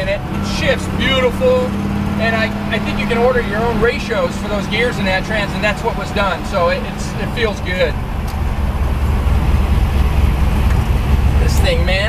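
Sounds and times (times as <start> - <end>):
car engine drone from cabin: 0.0 - 12.0.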